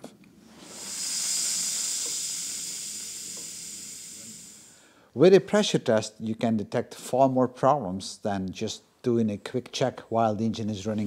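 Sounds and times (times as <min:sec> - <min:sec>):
pressurised air hissing: 0:00.5 - 0:05.1.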